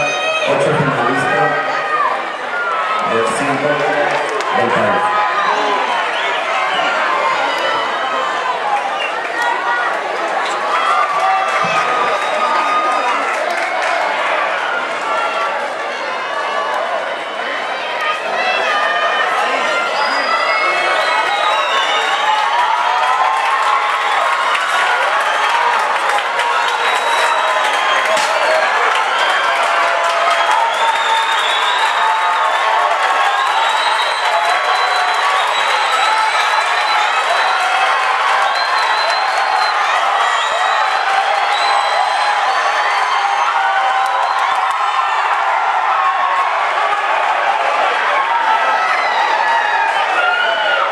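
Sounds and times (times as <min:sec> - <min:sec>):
stadium crowd shouting and cheering: 0:00.0 - 0:50.9.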